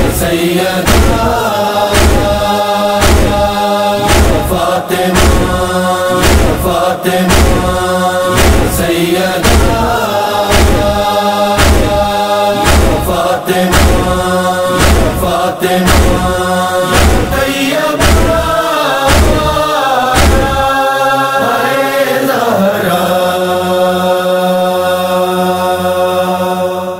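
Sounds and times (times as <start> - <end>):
low beat: 0.0 - 20.7
sustained vocal drone: 0.0 - 26.9.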